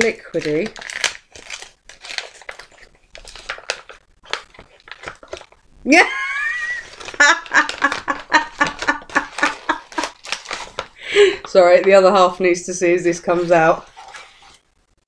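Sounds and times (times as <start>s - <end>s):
wrapping paper rustling and tearing: 0.0s - 5.7s, 6.3s - 15.0s
woman exclaiming: 5.9s - 7.6s
woman laughing: 5.9s - 10.2s.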